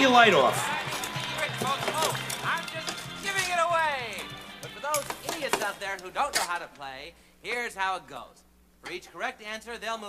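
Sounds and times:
game show music: 0.0 - 6.2.

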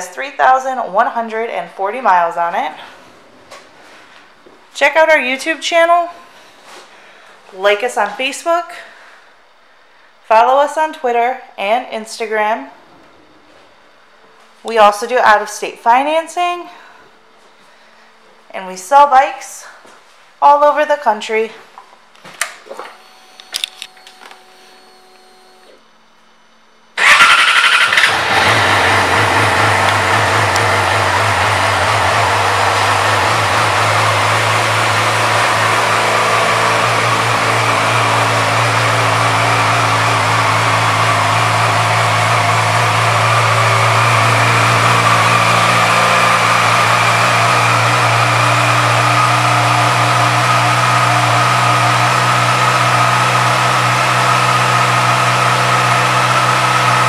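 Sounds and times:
motorcycle engine starting and idling: 27.0 - 57.0.

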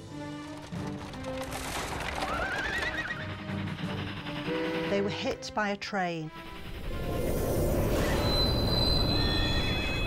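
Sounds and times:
horse whinnying: 2.2 - 3.4
train wheels squealing: 7.3 - 10.0.

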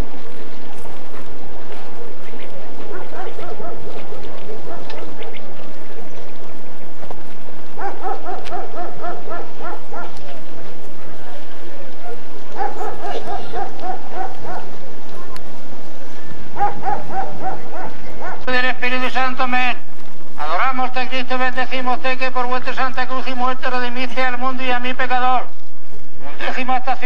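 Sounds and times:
person's voice holding steady pitch: 12.8 - 14.4, 18.3 - 25.6, 26.2 - 27.0.

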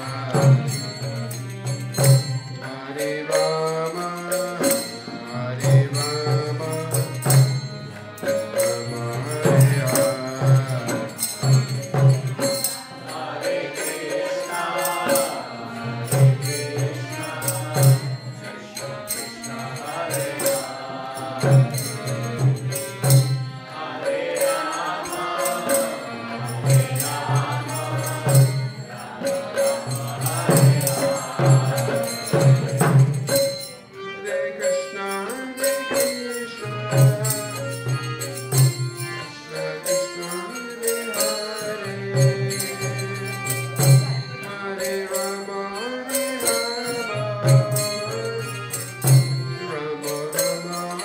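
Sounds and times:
harmonium melody: 0.0 - 51.0
percussion strikes: 0.0 - 51.0
group chanting: 12.9 - 18.7, 19.4 - 33.0.

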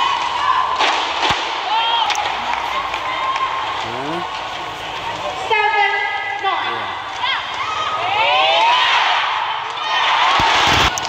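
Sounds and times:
crowd murmur: 1.5 - 10.2.

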